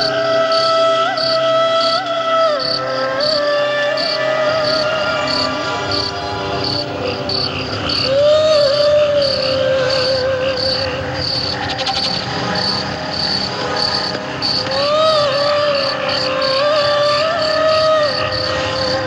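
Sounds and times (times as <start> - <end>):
cricket chirping: 0.0 - 19.0
instrumental film song: 0.0 - 19.0.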